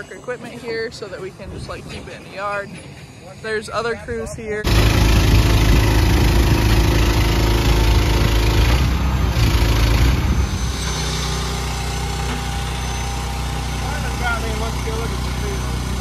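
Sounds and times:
diesel engine rumbling: 4.6 - 16.0.

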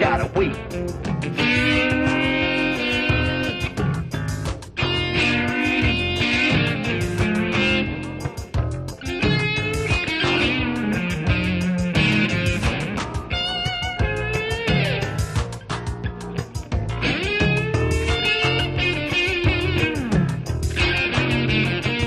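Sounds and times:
bass guitar: 0.0 - 22.0
electric guitar playing: 0.0 - 22.0
steady drum beat: 0.0 - 22.0.

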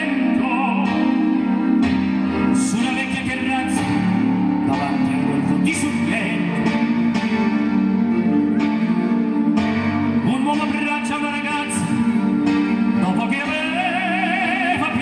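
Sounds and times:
instrumental accompaniment: 0.0 - 15.0
operatic singing voices: 2.5 - 6.7, 10.2 - 15.0.

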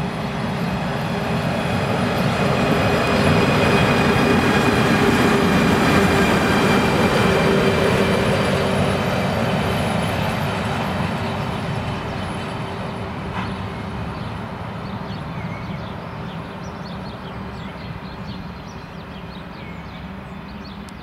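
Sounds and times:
locomotive hum: 0.0 - 21.0
locomotive wheels rumbling on rails: 0.0 - 21.0.

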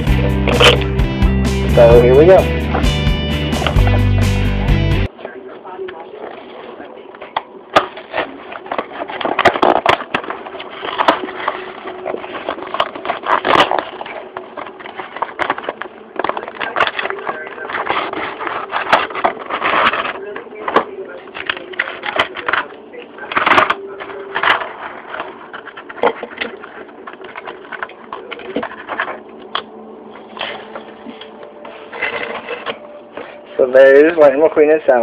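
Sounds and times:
plastic packaging crinkling: 6.0 - 35.0.

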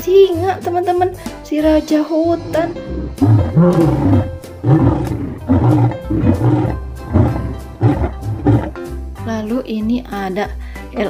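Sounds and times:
background music: 0.0 - 11.0
lion roaring: 2.5 - 8.8.

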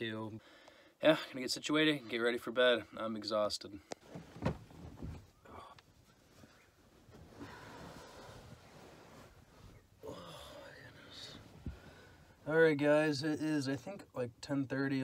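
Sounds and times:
bedding rustling: 4.0 - 13.1.

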